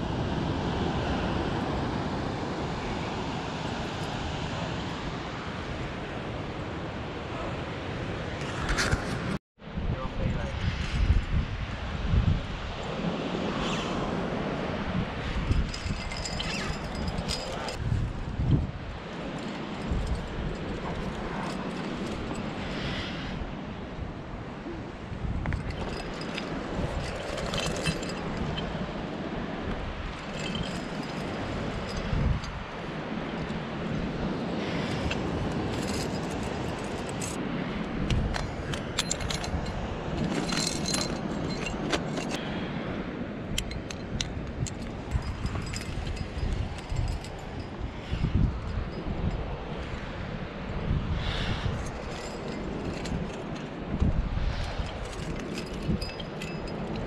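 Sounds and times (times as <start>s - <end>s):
wind rumble on microphone: 0.0s - 57.0s
metal climbing gear jingling: 15.2s - 23.0s, 25.2s - 37.4s, 38.0s - 42.4s, 43.5s - 50.0s, 51.7s - 57.0s.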